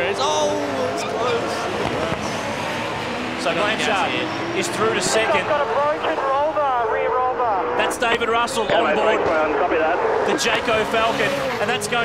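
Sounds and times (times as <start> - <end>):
racing car engines: 0.0 - 12.0.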